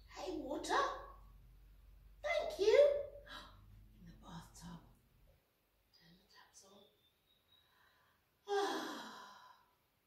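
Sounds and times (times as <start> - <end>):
woman sighing: 8.4 - 9.6.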